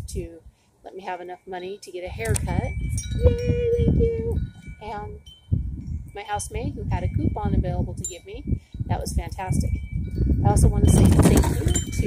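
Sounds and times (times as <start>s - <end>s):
wind buffeting microphone: 0.0s - 0.5s, 2.0s - 12.0s
wind chimes ringing: 1.4s - 12.0s.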